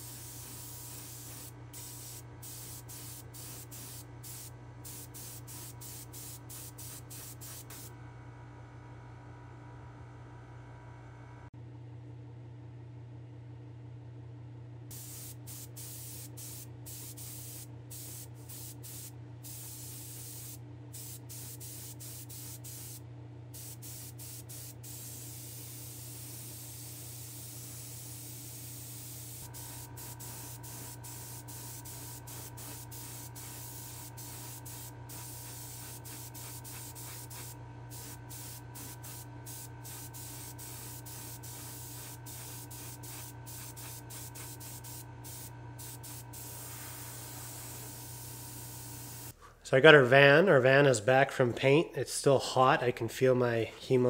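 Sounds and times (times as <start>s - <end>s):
paint spraying hiss: 0.0s - 7.9s, 14.9s - 23.0s, 23.6s - 49.4s
steady low hum: 0.0s - 54.0s.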